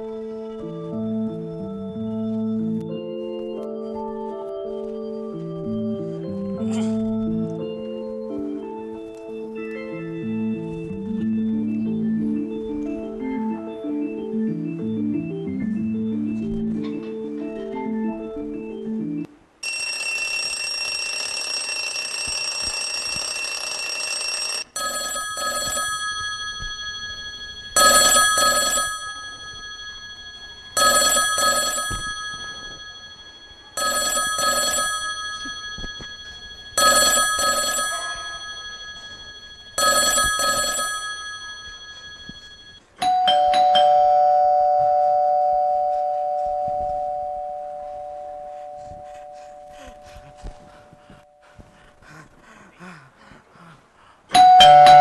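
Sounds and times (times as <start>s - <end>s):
bell ringing: 19.6s - 50.0s, 54.4s - 55.0s.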